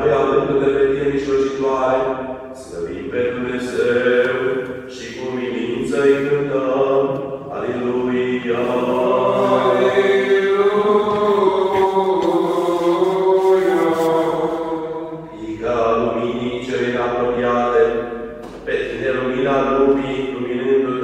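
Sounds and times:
chanted sung refrain: 7.5 - 18.0.

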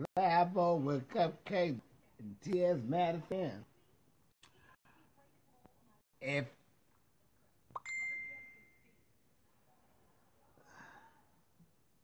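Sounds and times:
bright ding: 7.8 - 8.8.

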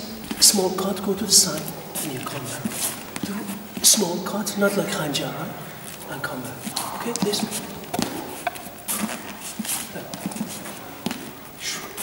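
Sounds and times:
footsteps on sports hall floor: 0.0 - 12.0.

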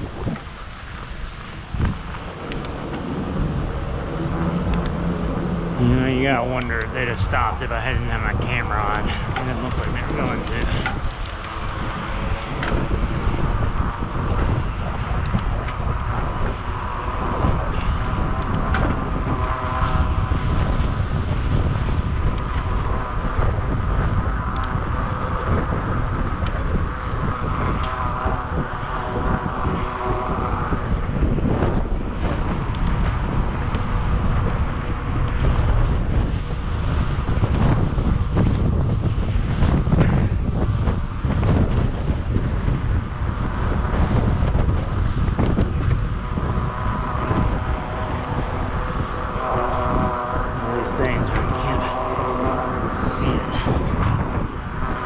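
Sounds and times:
bicycle tyre rolling noise: 0.0 - 55.0
steady high whir: 0.0 - 55.0
wind buffeting microphone: 0.0 - 55.0.

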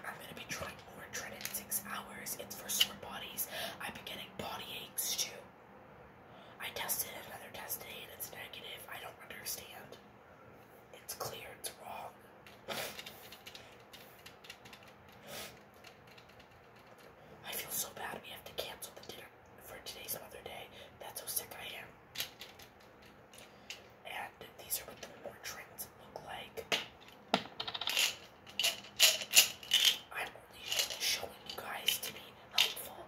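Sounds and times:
plastic medicine bottle clicks and rattles: 26.8 - 30.0, 30.6 - 32.9.

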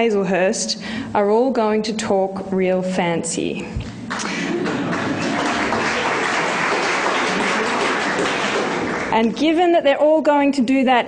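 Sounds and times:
audience applauding: 4.1 - 9.2.

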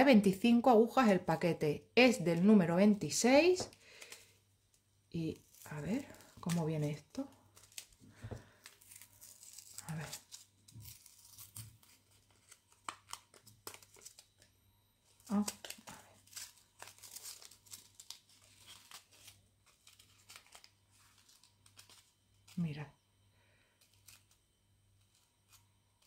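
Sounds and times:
paper wrapping crinkling and tearing: 5.3 - 22.6.

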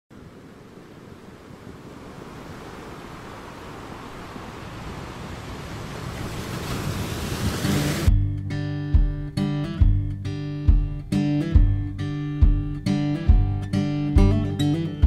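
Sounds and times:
sea waves washing: 0.1 - 8.1.

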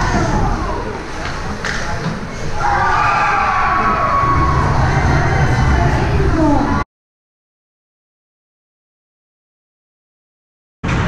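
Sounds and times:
spectators cheering: 2.5 - 6.8.

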